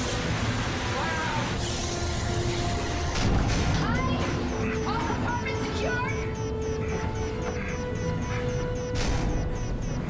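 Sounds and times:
action film music: 0.0 - 10.0.

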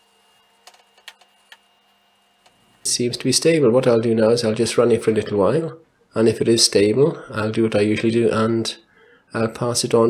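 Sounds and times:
computer hum: 0.0 - 7.9.

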